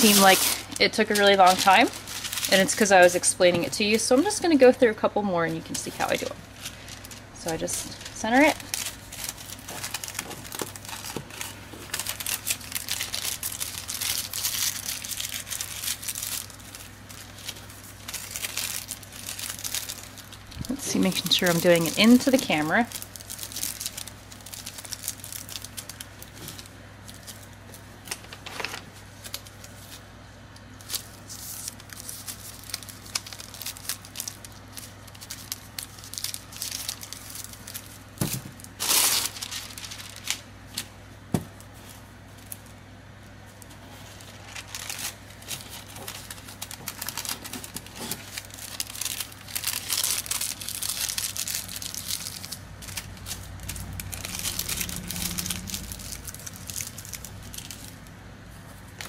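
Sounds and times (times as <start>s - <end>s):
wax paper crinkling: 0.0s - 59.0s.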